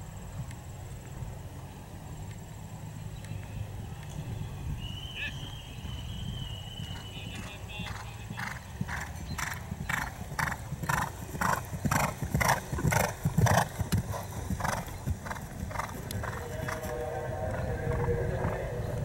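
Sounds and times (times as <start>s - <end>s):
horse hoofbeats on turf: 5.3s - 17.0s.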